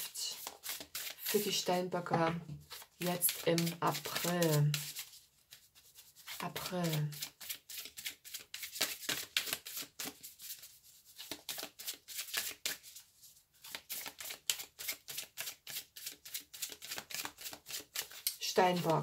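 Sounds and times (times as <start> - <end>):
cards being shuffled: 0.3 - 13.0, 13.6 - 19.0.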